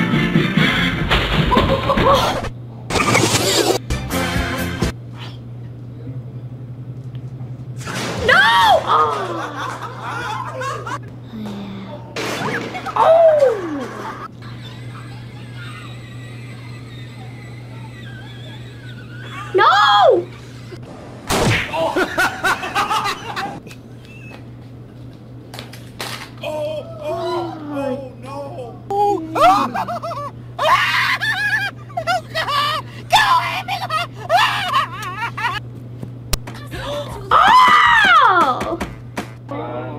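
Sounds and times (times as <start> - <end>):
music: 0.0 - 2.4, 3.7 - 5.0
laughter: 1.5 - 2.4, 9.1 - 11.0, 13.8 - 19.6, 21.7 - 24.4, 29.4 - 35.6
woman screaming: 8.2 - 9.5, 13.0 - 13.9, 19.4 - 20.3, 26.4 - 28.1, 28.9 - 31.7, 32.5 - 35.6, 36.7 - 38.6
long falling cry: 13.0 - 14.0, 26.4 - 28.1, 30.6 - 31.8.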